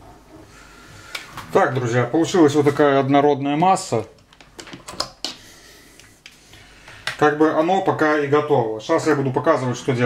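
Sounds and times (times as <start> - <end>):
plastic clicks and taps: 4.2 - 5.4.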